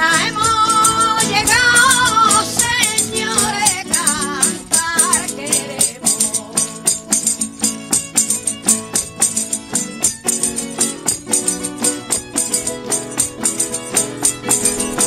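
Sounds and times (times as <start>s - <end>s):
woman singing: 0.0s - 7.0s
acoustic guitars: 0.0s - 15.0s
frame tambourine: 0.0s - 15.0s.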